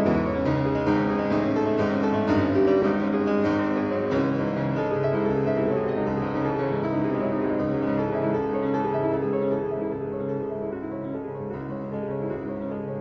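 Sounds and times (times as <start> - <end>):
slow piano piece: 0.0 - 13.0.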